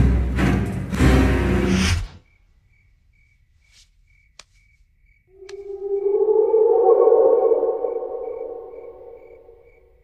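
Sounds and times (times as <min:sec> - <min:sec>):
eerie held drone: 0:05.4 - 0:09.8.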